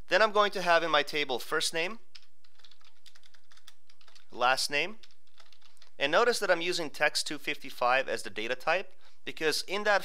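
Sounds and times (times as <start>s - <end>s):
computer keyboard typing: 2.1s - 4.3s, 4.9s - 6.0s.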